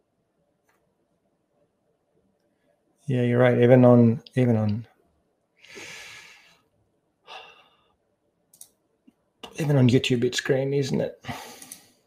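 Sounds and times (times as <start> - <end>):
man sighing: 7.3 - 7.8.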